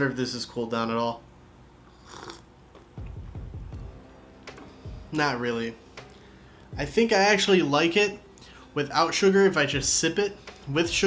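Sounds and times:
slurping sip of tea: 1.8 - 2.5.

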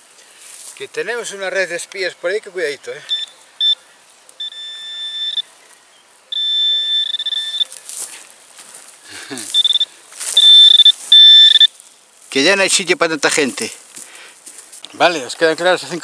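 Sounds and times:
rustling of grass and soil: 0.0 - 16.0
high-pitched pinpointer tone: 3.0 - 3.8, 4.4 - 5.5, 6.3 - 7.8, 9.5 - 11.7.

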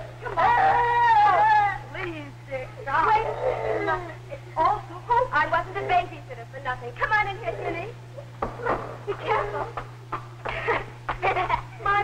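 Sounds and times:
steady low hum: 0.0 - 12.0
people speaking indistinctly: 1.7 - 8.3.

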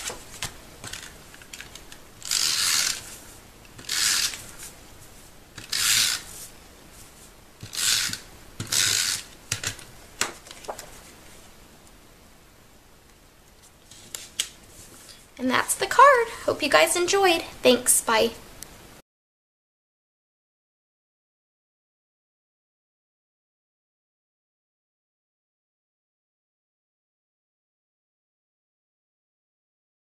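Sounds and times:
cardstock rasping strokes: 2.3 - 9.3.

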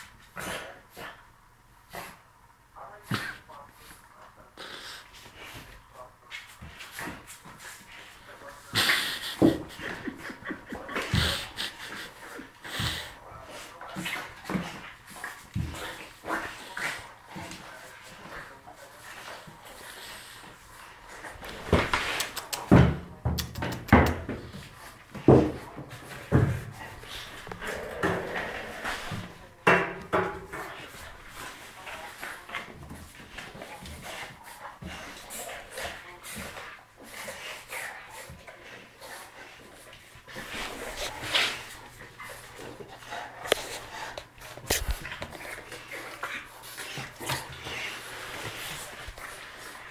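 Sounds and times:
dogs scuffling: 24.2 - 49.9
dog vocal noises: 26.7 - 29.6.

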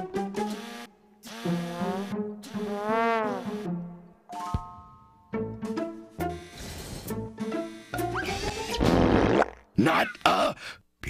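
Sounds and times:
brass-like cartoon music: 1.2 - 4.1, 5.4 - 9.5.

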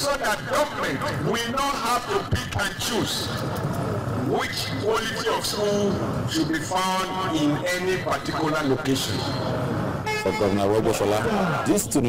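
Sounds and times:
man speaking into a microphone: 4.2 - 9.4, 10.0 - 12.0
horn-like toot: 10.0 - 11.6.

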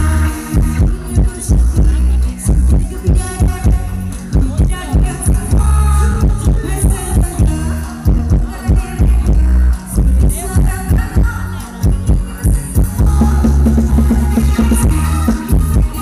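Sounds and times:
amplified live band music: 0.0 - 16.0.

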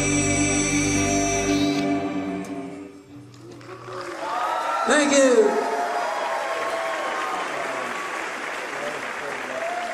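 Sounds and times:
audience applause: 3.4 - 9.9.

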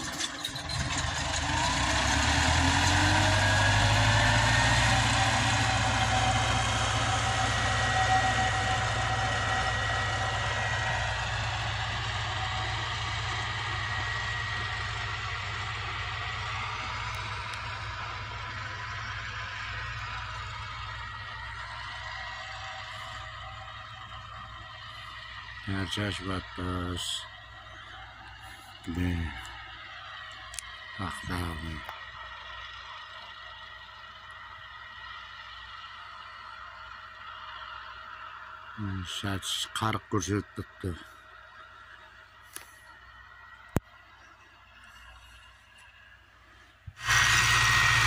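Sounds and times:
vehicle engine speeding up: 0.6 - 32.3, 46.9 - 48.0.

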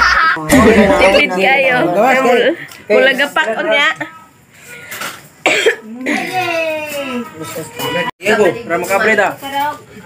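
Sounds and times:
person coughing: 5.4 - 6.3.

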